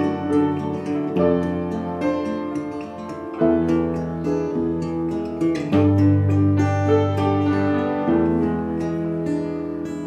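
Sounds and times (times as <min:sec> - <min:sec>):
acoustic guitar picked chords: 0:00.0 - 0:10.0
piano accompaniment: 0:00.0 - 0:10.0.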